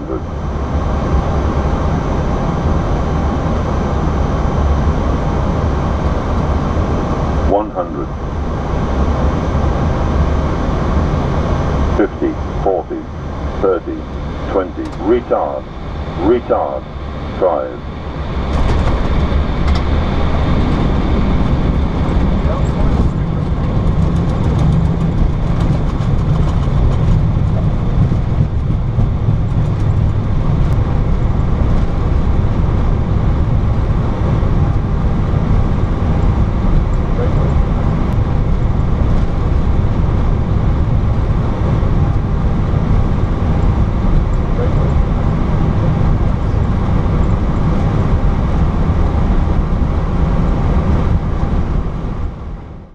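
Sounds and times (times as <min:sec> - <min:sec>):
wheels and engines rumbling: 0:00.0 - 0:52.9.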